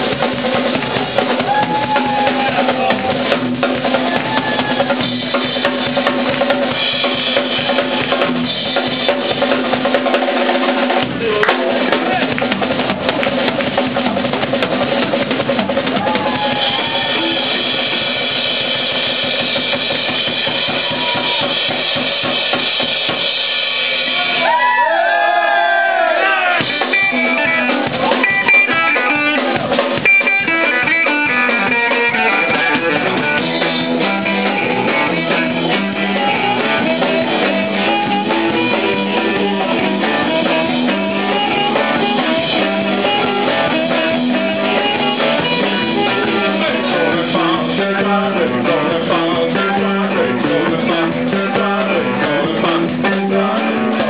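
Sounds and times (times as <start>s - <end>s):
guitar run: 0.0s - 23.3s, 25.6s - 54.0s
bass drum and snare: 0.0s - 24.6s, 26.3s - 54.0s
live band music: 0.0s - 54.0s.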